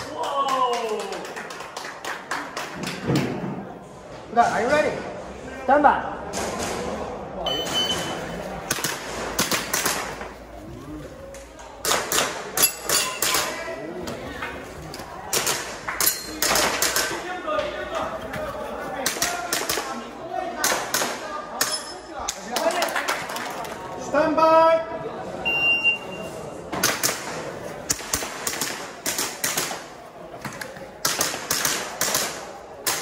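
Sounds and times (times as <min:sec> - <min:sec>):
shot timer beep: 0:07.5 - 0:08.2, 0:25.5 - 0:26.3.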